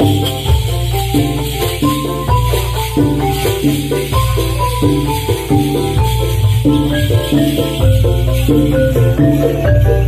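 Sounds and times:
gongs and metallophones playing: 0:00.0 - 0:10.0
high jingling rattle: 0:00.0 - 0:10.0.

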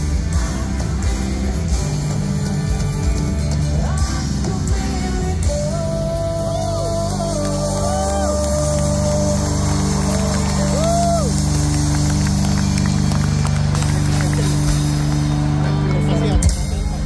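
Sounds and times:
rock band sustained chord: 0:00.0 - 0:17.0.

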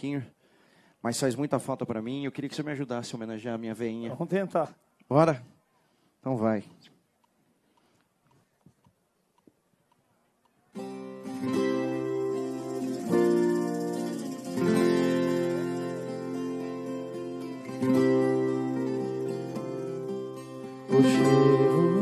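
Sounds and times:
faint clicks: 0:06.8 - 0:10.7
acoustic guitar chords: 0:10.8 - 0:22.0.

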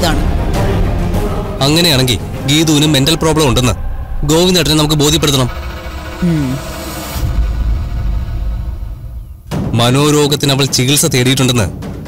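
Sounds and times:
steady low drone: 0:00.0 - 0:09.7.

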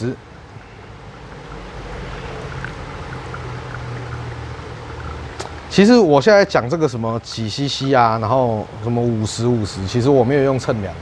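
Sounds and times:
water pouring onto coffee grounds: 0:00.6 - 0:09.0.

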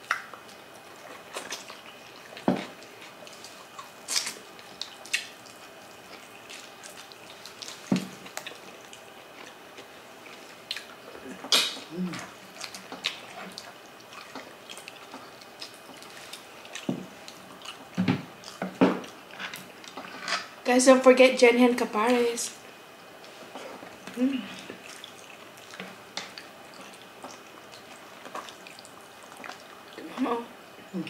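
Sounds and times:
wet chewing and lip smacking: 0:00.0 - 0:20.2, 0:23.2 - 0:30.2.

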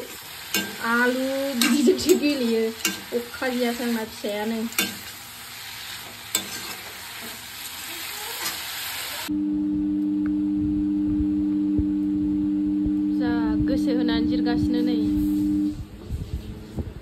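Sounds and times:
vegetables sizzling in a wok: 0:00.0 - 0:09.3, 0:14.4 - 0:16.4
low two-note hum: 0:09.3 - 0:17.0.

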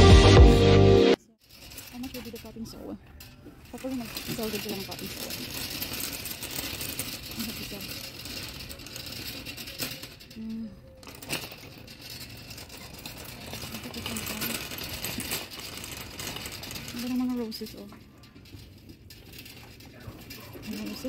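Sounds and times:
shopping cart rattling on concrete: 0:01.4 - 0:21.0.

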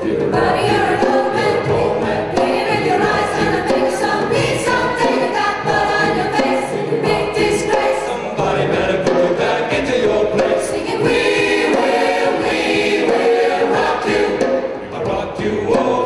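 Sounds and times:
choir singing: 0:00.0 - 0:16.0
hand drum beating: 0:00.0 - 0:16.0
live band: 0:00.0 - 0:16.0.

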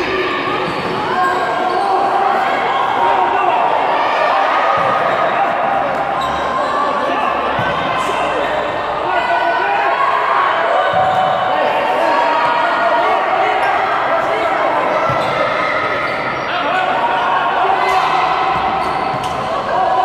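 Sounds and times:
players shouting: 0:00.0 - 0:20.0.

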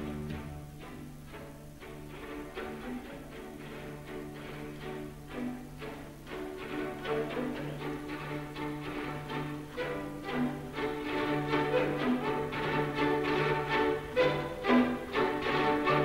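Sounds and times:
bowed strings sustained notes: 0:00.0 - 0:16.0.

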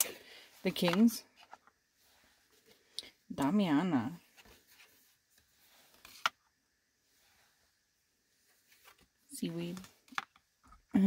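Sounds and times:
cards rustling: 0:04.4 - 0:06.4.

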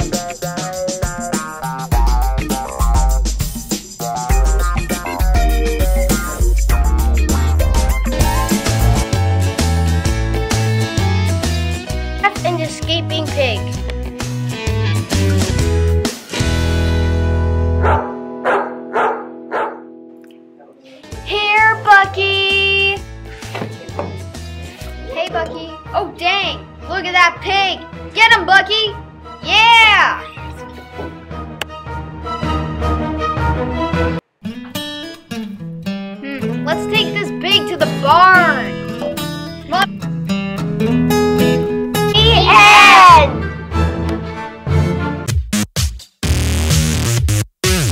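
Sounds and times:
dog barking: 0:17.8 - 0:19.9
acoustic guitar strumming: 0:34.4 - 0:43.5.

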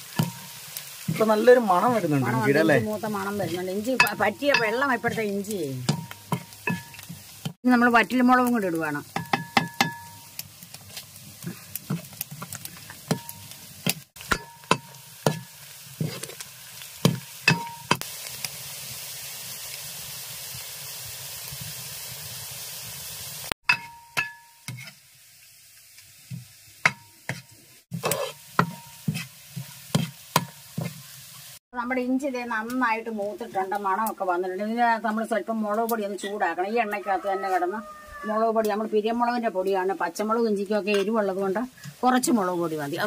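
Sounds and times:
food frying in oil: 0:00.0 - 0:43.0
wooden ladle knocking metal pan: 0:00.1 - 0:01.3, 0:03.4 - 0:07.2, 0:09.2 - 0:10.2, 0:14.2 - 0:15.6, 0:23.7 - 0:24.5, 0:28.0 - 0:29.2.

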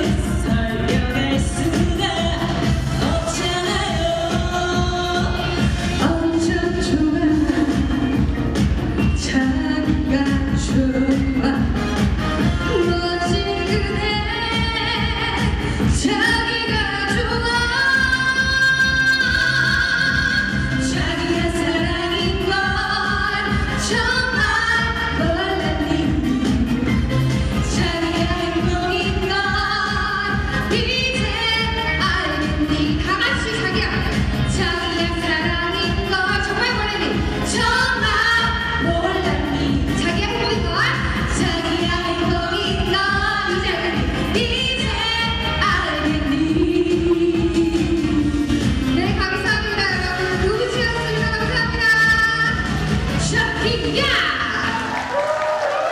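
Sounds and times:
backing track with steady beat: 0:00.0 - 0:54.1
women singing into microphones: 0:00.0 - 0:54.8.

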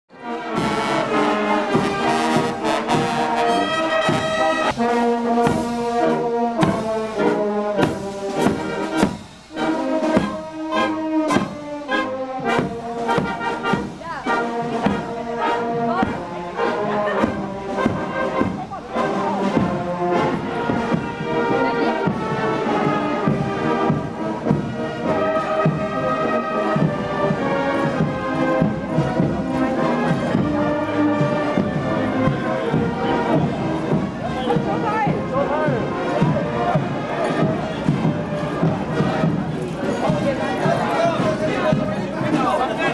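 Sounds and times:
brass marching band playing: 0:00.1 - 0:42.9
voices of onlookers: 0:00.2 - 0:42.9
drum beat: 0:00.5 - 0:42.9.

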